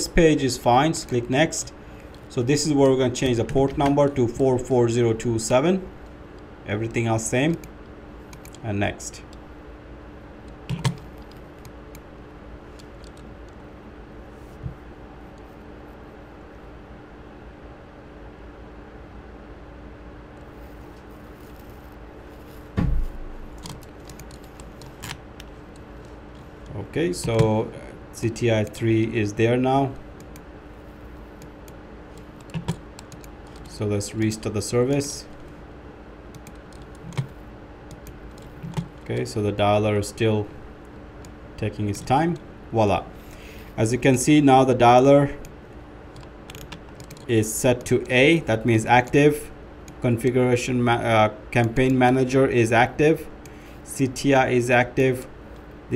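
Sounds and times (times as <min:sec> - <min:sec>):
faint steady hum: 0:00.0 - 0:55.9
computer keyboard and mouse clicks: 0:08.3 - 0:08.6, 0:10.6 - 0:12.0, 0:12.7 - 0:13.6, 0:23.6 - 0:25.9, 0:31.4 - 0:33.7, 0:36.3 - 0:39.3, 0:46.1 - 0:47.3.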